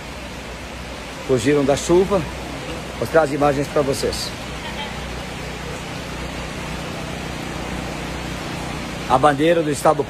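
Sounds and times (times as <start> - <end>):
heavy rain on tent canopy: 0.0 - 10.0.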